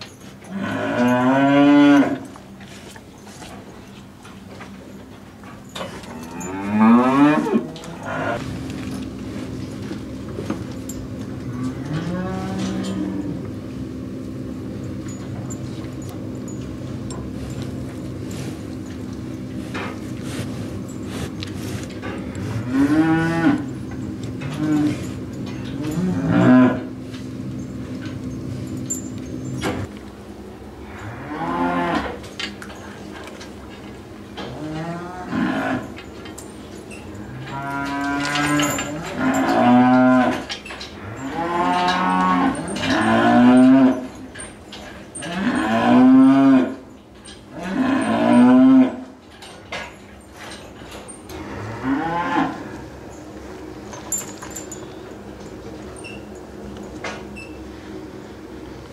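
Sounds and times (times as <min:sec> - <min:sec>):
cows mooing: 0:00.4 - 0:02.6, 0:05.8 - 0:28.4, 0:30.8 - 0:32.2, 0:34.4 - 0:36.0, 0:36.9 - 0:49.2, 0:51.3 - 0:53.3
steady hum: 0:02.0 - 0:39.2.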